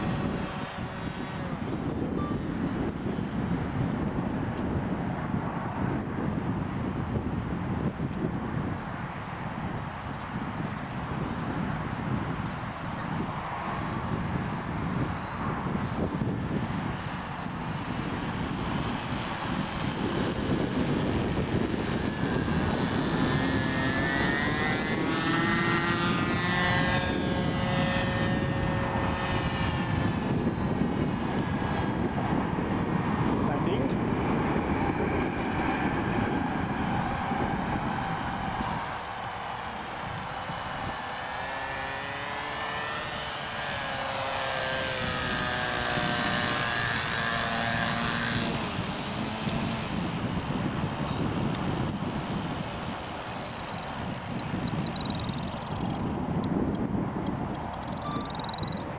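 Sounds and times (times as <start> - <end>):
model aircraft motor whine: 0.0 - 5.3, 7.0 - 58.9
wind noise on microphone: 0.0 - 58.9.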